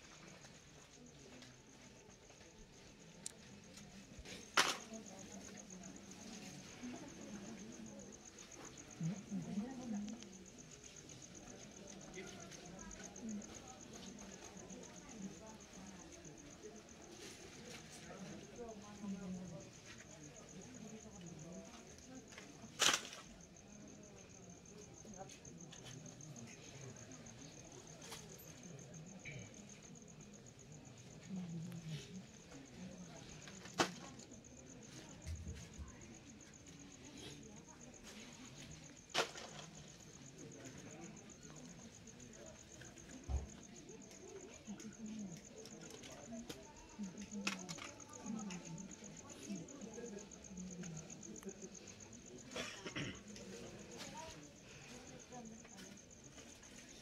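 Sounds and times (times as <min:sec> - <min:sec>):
murmur of crowd voices: 0:02.3 - 0:56.9
insect chirping: 0:32.3 - 0:57.0.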